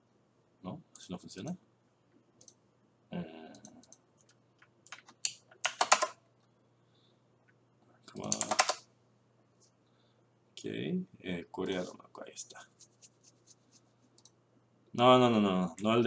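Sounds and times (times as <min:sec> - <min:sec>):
murmured vocal sounds: 0:03.1 - 0:03.8
keyboard typing: 0:03.6 - 0:06.2, 0:08.2 - 0:08.8.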